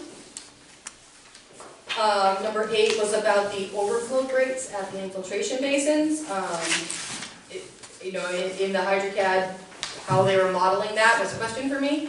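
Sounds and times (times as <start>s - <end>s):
person speaking: 2.0s - 12.0s.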